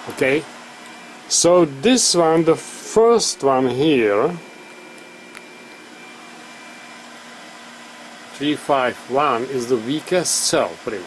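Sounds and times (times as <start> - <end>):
steady background hiss: 0.2 - 11.0.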